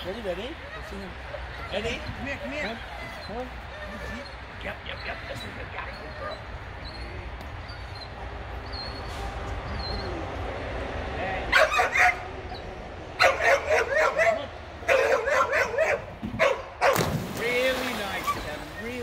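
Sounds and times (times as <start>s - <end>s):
dog barking and yipping: 11.5s - 12.6s, 13.2s - 17.1s
splash into pool: 16.9s - 19.0s.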